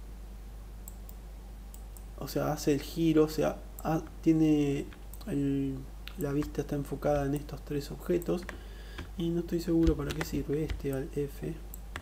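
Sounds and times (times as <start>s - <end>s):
low electrical hum: 0.0s - 12.0s
computer mouse clicks: 0.8s - 2.1s, 6.1s - 6.6s.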